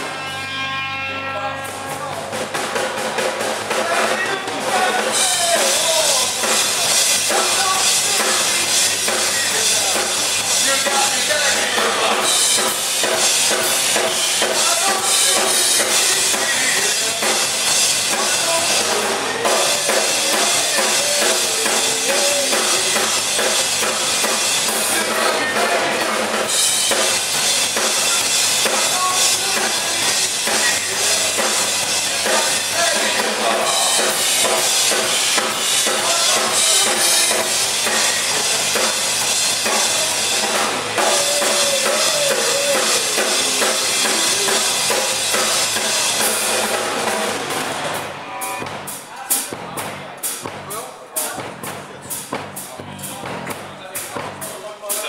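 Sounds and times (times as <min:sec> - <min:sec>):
drum kit: 0:00.0 - 0:55.0
person singing: 0:18.1 - 0:23.4, 0:41.0 - 0:45.1.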